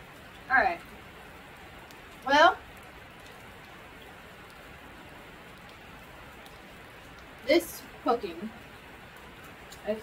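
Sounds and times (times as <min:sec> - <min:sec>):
rain on a metal roof: 0:00.0 - 0:10.0
raindrop ticks: 0:00.0 - 0:10.0.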